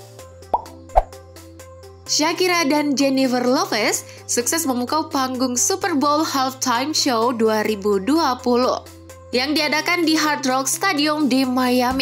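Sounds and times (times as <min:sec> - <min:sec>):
plop sound effects: 0:00.5 - 0:01.1.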